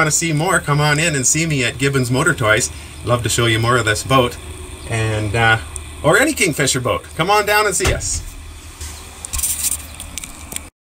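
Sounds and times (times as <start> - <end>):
low rumble: 0.0 - 10.7
handheld camera rustling and clicking: 8.8 - 10.7.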